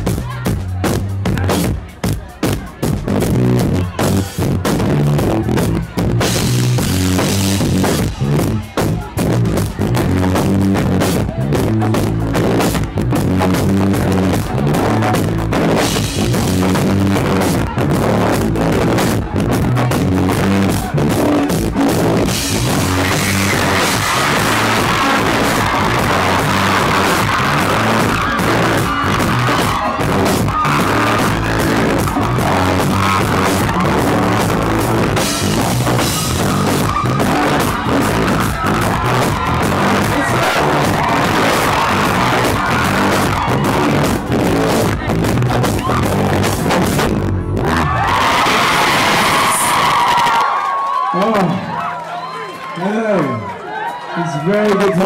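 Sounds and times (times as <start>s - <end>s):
bass guitar: 0.0s - 51.8s
drum kit: 0.0s - 51.8s
electric guitar: 11.0s - 50.7s.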